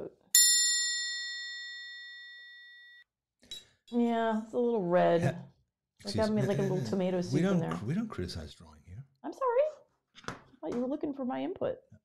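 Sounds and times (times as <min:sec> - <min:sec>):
bright bell-like chime: 0:00.4 - 0:03.0.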